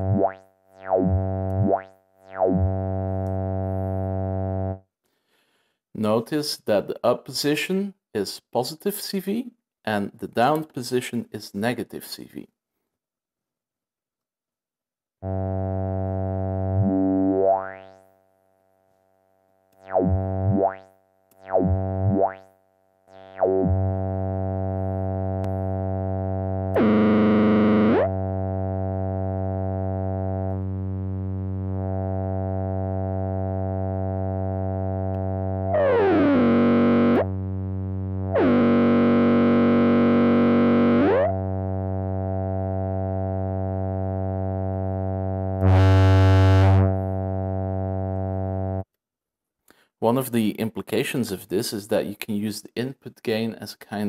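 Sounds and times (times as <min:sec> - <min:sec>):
buzzy synthesizer drone: 0:00.0 - 0:04.8, 0:15.2 - 0:18.0, 0:19.8 - 0:22.5, 0:23.1 - 0:48.8
synthesizer notes with sweeping overtones: 0:00.0 - 0:04.8, 0:19.8 - 0:22.4, 0:23.1 - 0:42.4, 0:45.6 - 0:48.8.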